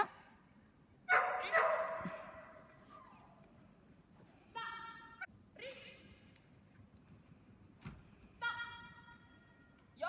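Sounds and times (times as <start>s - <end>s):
dog barking with echo: 1.1s - 2.1s.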